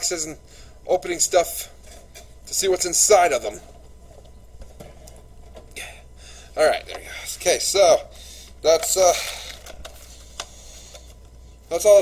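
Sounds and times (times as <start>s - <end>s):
low steady hum: 0.0s - 12.0s
man saying uh: 6.6s - 9.4s.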